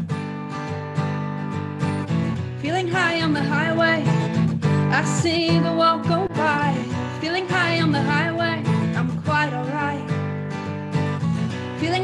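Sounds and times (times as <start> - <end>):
acoustic guitar strumming: 0.0 - 12.0
woman singing: 2.4 - 10.8, 11.5 - 12.0.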